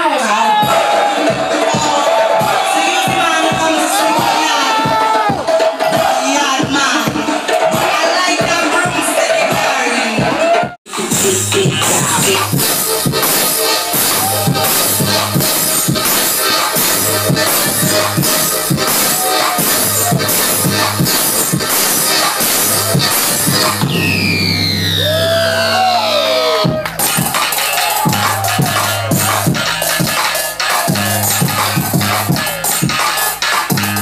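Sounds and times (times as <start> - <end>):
electronic trap music: 0.0 - 34.0.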